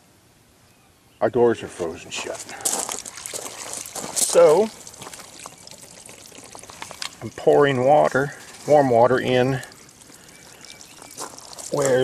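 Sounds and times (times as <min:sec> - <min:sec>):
water trickling onto door seal: 0:02.9 - 0:12.0.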